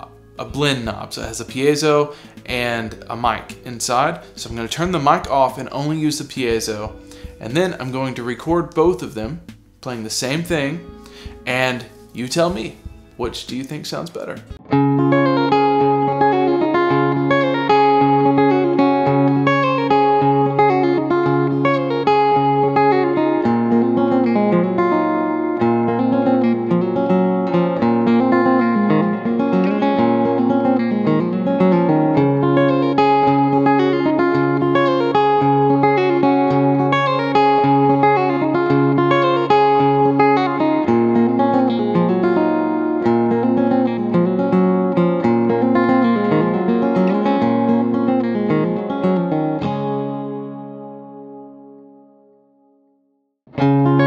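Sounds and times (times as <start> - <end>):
acoustic guitar playing chords: 0.0 - 54.0.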